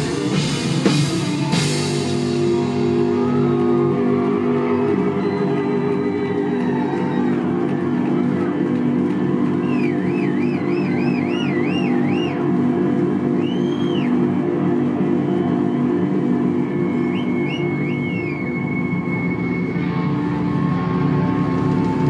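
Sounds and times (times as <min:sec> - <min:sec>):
high wavering lead guitar tone: 0:00.0 - 0:22.0
low amplified guitar chords: 0:00.0 - 0:22.0.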